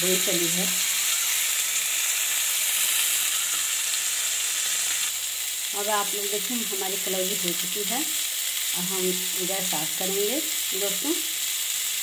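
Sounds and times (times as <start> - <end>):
oil sizzling in a pan: 0.0 - 12.0.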